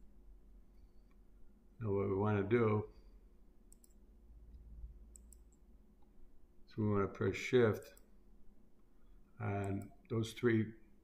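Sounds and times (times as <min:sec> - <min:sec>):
faint low hum: 0:00.0 - 0:11.0
computer mouse clicks: 0:03.7 - 0:04.0, 0:05.1 - 0:05.6, 0:09.6 - 0:10.0.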